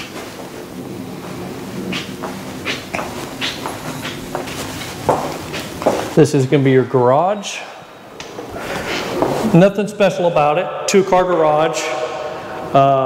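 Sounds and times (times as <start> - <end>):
footsteps in empty room: 0.0 - 6.6, 7.3 - 12.8.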